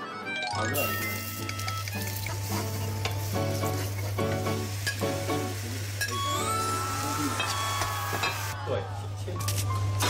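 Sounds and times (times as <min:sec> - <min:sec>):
food sizzling in frying pan: 0:00.8 - 0:08.6.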